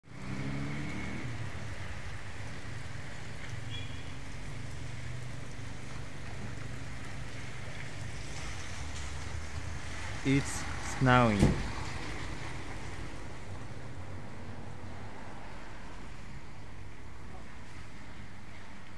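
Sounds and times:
wet snow falling on street: 0.0s - 18.9s.

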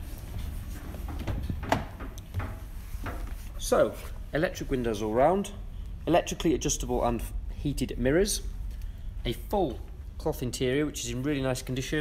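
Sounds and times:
low steady rumble: 0.0s - 12.0s
soft knocks: 1.0s - 3.4s.

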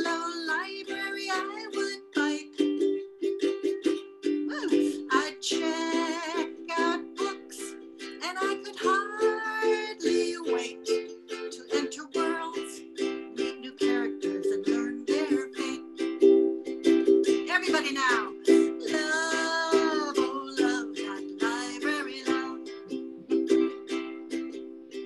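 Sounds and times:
woman singing: 0.0s - 2.7s, 4.4s - 16.1s, 17.3s - 23.1s
ukulele strumming chords: 0.0s - 25.0s.

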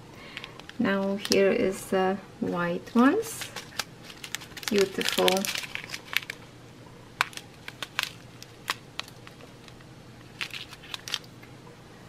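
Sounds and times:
plastic bags crinkling: 3.3s - 6.4s, 7.2s - 11.4s.

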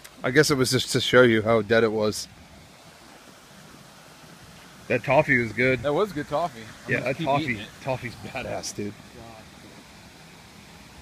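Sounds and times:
outdoor ambience hiss: 0.0s - 11.0s.

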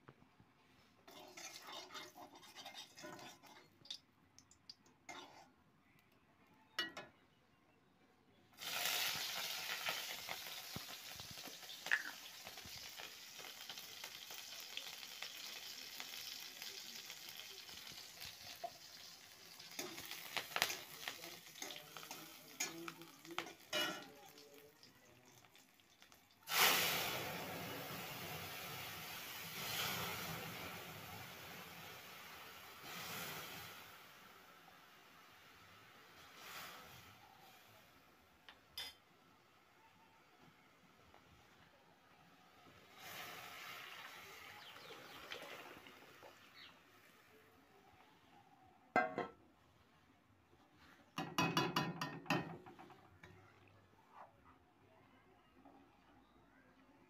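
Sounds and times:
metal spatula scraping: 1.0s - 3.8s, 5.1s - 5.6s, 19.6s - 24.2s
hot oil sizzling: 1.0s - 5.5s, 8.6s - 38.2s, 42.4s - 47.3s.

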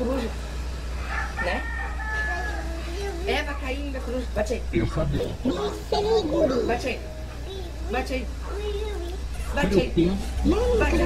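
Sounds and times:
rooster crowing: 0.9s - 3.2s.

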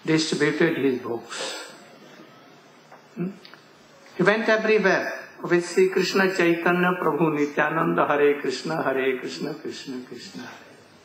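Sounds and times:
room hiss: 0.0s - 11.0s
man saying hmm: 3.2s - 3.5s.

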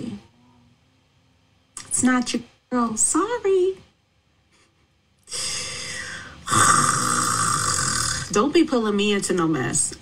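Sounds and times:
woman sighing: 5.3s - 6.8s.

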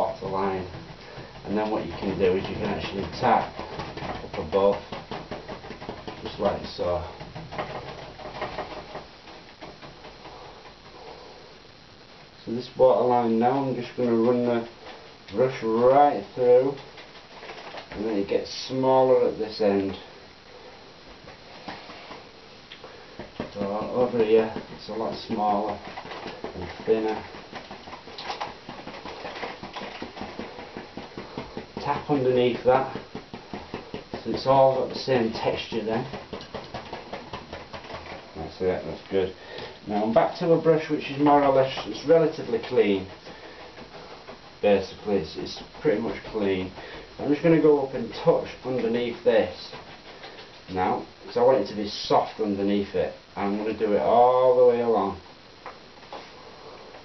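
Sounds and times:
paintbrush tapping on canvas: 23.2s - 38.2s.

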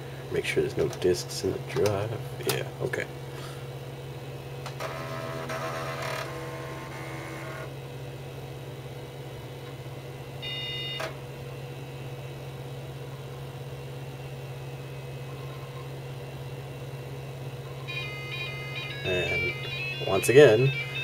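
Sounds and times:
computer hum: 0.0s - 21.0s.

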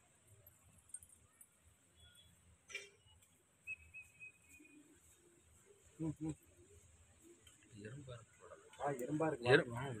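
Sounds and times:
thin high whistle-like tone: 1.9s - 2.4s, 3.0s - 5.0s.

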